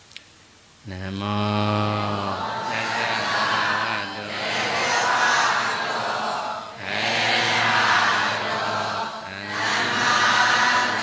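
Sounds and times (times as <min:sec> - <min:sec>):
men chanting: 0:00.9 - 0:11.0.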